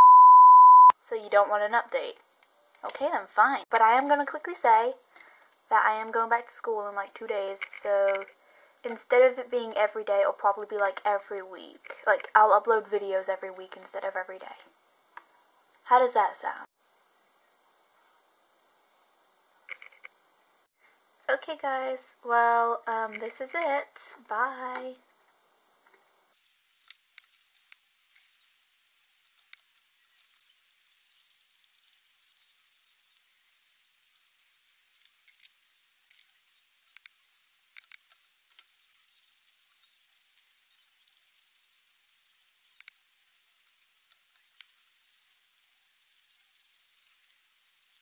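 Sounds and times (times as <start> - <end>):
faint steady hiss: 0.0 - 48.0
guinea pig crunching food: 19.7 - 20.1, 26.3 - 42.0.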